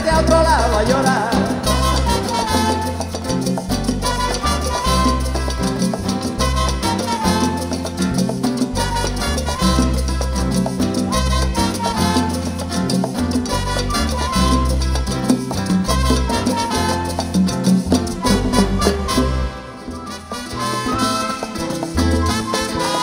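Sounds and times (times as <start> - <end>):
salsa band playing: 0.0 - 23.0.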